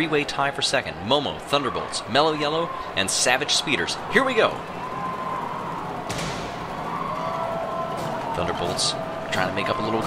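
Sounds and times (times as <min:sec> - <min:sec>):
starting gate thud: 0:06.0 - 0:06.8.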